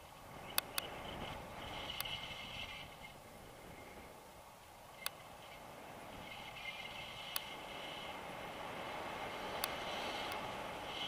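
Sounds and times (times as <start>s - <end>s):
wind rushing over microphone: 0.0s - 11.0s.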